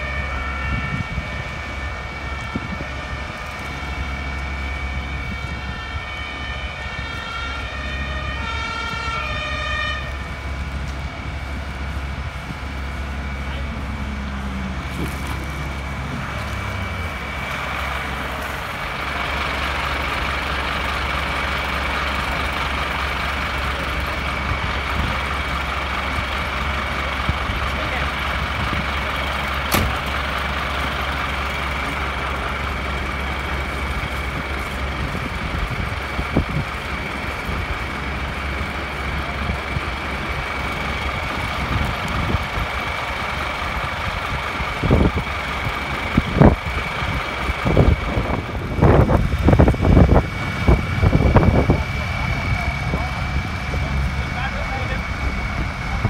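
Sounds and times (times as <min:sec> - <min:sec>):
diesel engine running: 0:00.0 - 0:56.0
high whine: 0:00.0 - 0:56.0.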